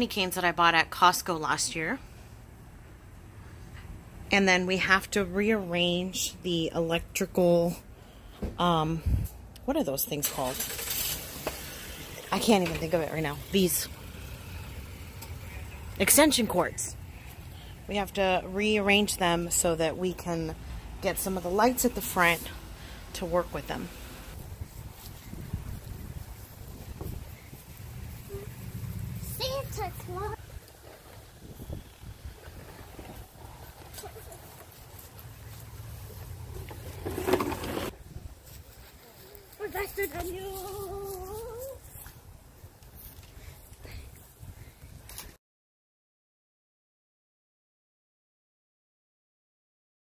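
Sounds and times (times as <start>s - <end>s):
wind rumble on microphone: 9.0s - 9.4s, 24.3s - 29.2s, 30.4s - 33.7s, 37.9s - 38.8s.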